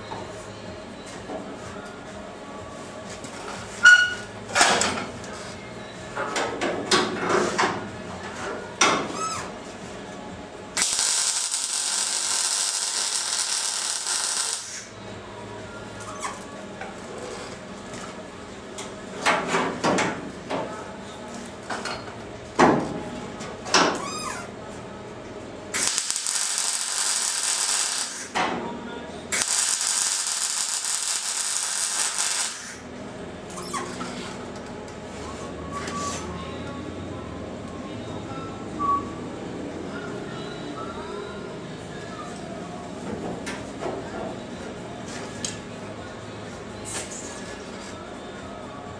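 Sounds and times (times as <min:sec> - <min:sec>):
welding hiss: 0:10.8 - 0:14.9, 0:25.8 - 0:28.4, 0:29.3 - 0:32.8.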